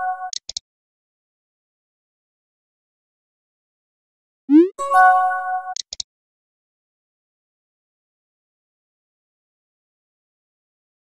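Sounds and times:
short click: 0:05.8 - 0:06.1.

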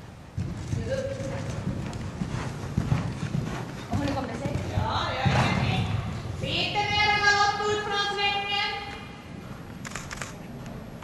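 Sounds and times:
horse hoofbeats on sand: 0:00.3 - 0:07.9.

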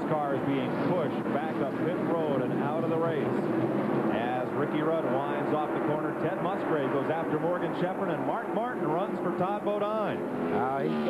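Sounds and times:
race car engines droning: 0:00.0 - 0:11.0
commentator talking: 0:04.1 - 0:11.0.

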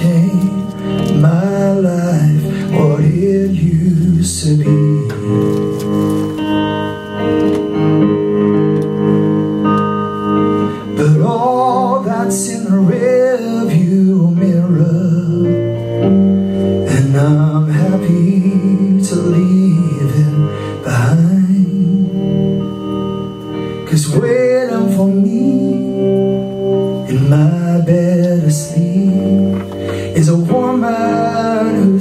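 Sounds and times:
man singing: 0:00.0 - 0:05.7, 0:10.7 - 0:15.7, 0:16.8 - 0:22.5, 0:23.8 - 0:26.2, 0:27.0 - 0:32.0
electric guitar chords: 0:00.0 - 0:32.0.

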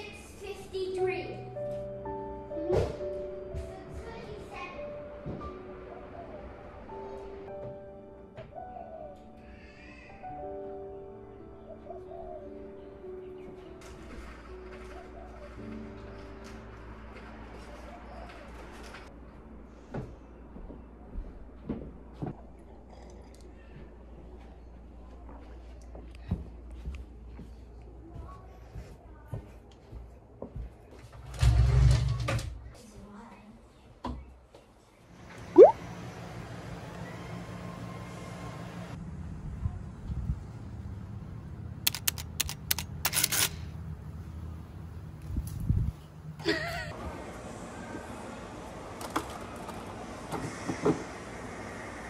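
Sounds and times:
sharp clicks: 0:41.9 - 0:43.6.

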